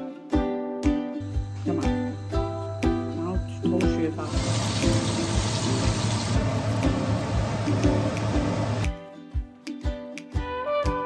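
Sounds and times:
background music with beat: 0.0s - 11.0s
chicken deep-frying in oil: 4.2s - 8.8s.

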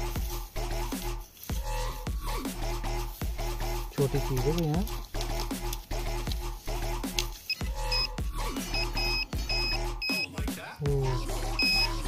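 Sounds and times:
background music: 0.0s - 12.0s
metal detector short beeps: 7.5s - 8.1s, 8.7s - 10.4s, 11.6s - 12.0s.

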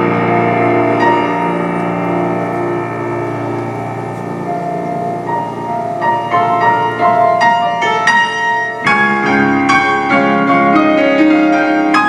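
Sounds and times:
piano playing held chords: 0.0s - 12.0s.

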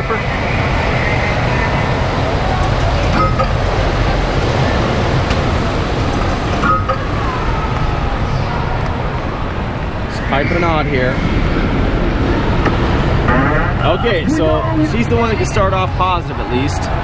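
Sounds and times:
game machine noise: 0.0s - 9.7s
crowd chatter: 0.0s - 17.0s
brief tones: 3.1s - 3.6s, 6.6s - 7.2s.

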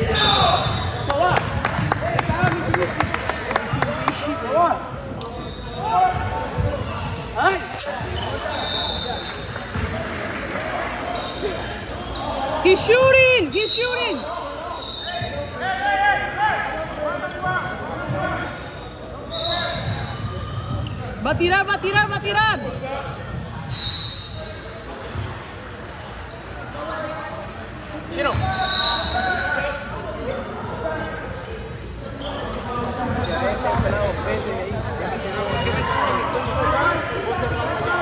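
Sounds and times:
short high shoe squeaks: 5.2s - 6.1s, 11.1s - 12.5s, 14.6s - 15.5s, 23.7s - 24.7s, 28.3s - 29.6s, 32.0s - 34.1s.

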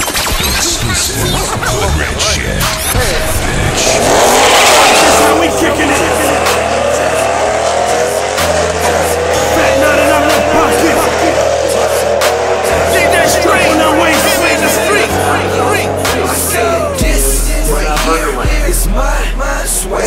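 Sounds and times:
hip-hop music with bass line: 0.0s - 20.0s
racing car engine revving: 0.3s - 20.0s
tyres squealing: 0.6s - 18.5s.

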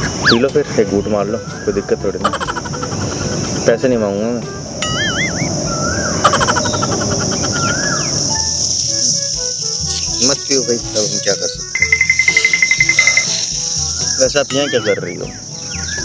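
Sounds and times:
high-pitched insect drone: 0.0s - 16.0s
light comic background music: 0.0s - 16.0s
rapid pulsing trill: 4.8s - 7.8s, 11.6s - 15.2s.

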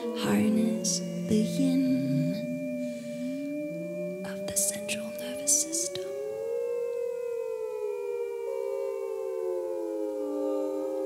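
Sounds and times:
vocal quartet singing sustained notes: 0.0s - 11.0s.

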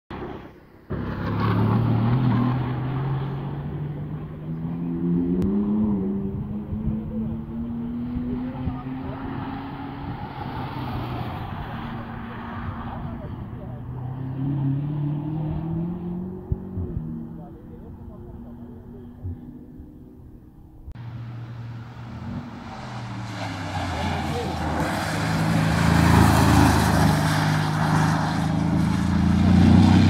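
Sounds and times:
racing car engines passing: 0.1s - 30.0s.

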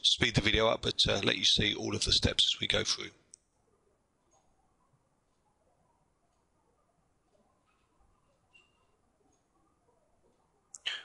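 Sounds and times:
man speaking: 0.0s - 3.2s.

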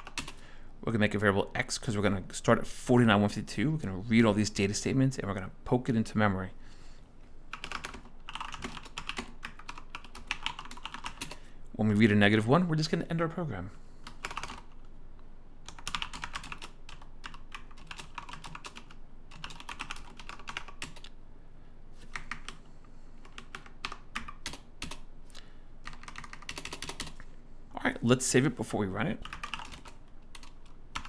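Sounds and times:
keyboard typing: 0.0s - 0.4s, 7.5s - 11.4s, 14.0s - 14.9s, 15.6s - 21.2s, 22.0s - 22.6s, 23.2s - 25.1s, 25.8s - 27.3s, 29.2s - 31.0s.

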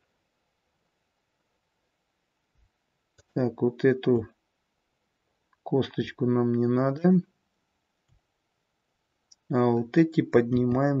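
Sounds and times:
person speaking: 3.2s - 4.4s, 5.7s - 7.4s, 9.3s - 11.0s.

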